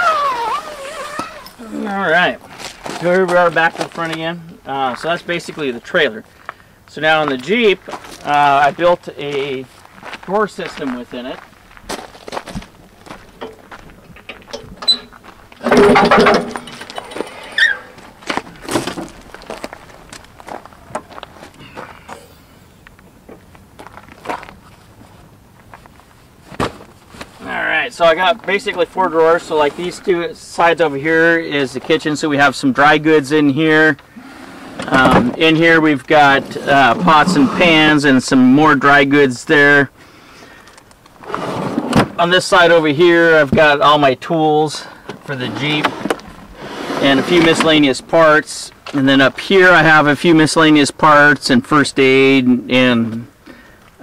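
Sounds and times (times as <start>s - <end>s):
footsteps on gravel: 2.4s - 4.3s, 7.2s - 14.5s, 17.9s - 22.2s, 23.3s - 27.4s
drawer sliding rumble: 15.6s - 18.0s, 36.2s - 37.8s, 41.2s - 42.2s, 45.5s - 47.7s.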